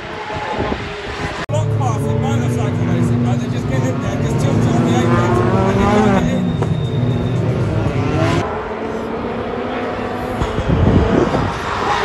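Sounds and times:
racing car engines: 0.0s - 12.0s.

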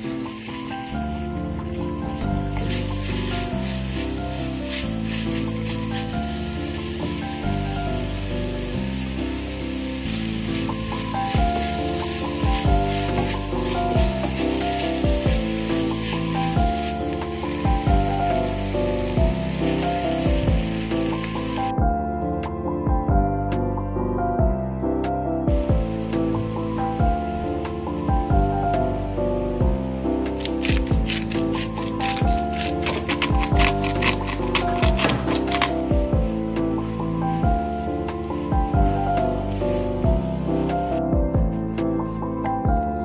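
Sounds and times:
food sizzling in a frying pan: 0.0s - 21.7s, 25.8s - 29.2s, 29.8s - 41.0s
background music with soft beat: 0.0s - 43.0s.

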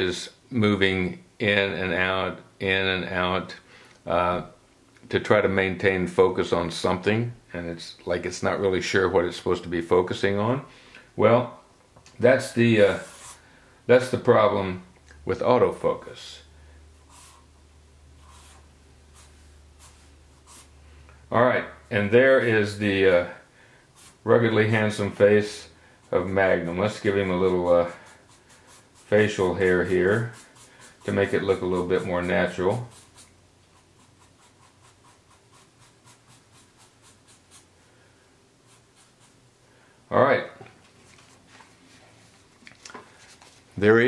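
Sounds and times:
low steady hum: 0.0s - 44.0s
marker drawing on paper: 12.4s - 13.4s, 17.0s - 17.6s, 18.2s - 20.8s, 24.0s - 25.3s, 26.0s - 37.8s, 38.6s - 39.4s.

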